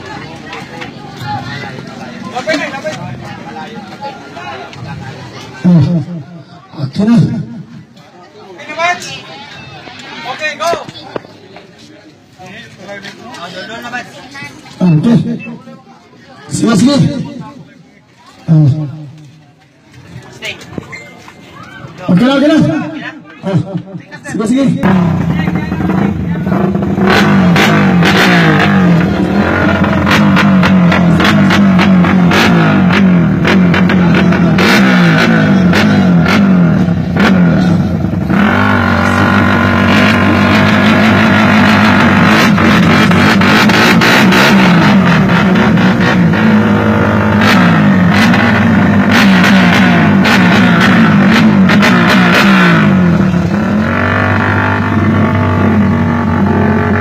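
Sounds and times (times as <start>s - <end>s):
motorcycle engine revving: 24.6s - 57.0s
exhaust cracks: 24.8s - 57.0s.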